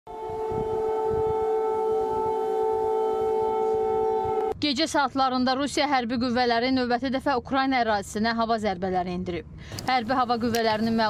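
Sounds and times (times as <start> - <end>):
air-raid siren steady tone: 0.1 - 4.6.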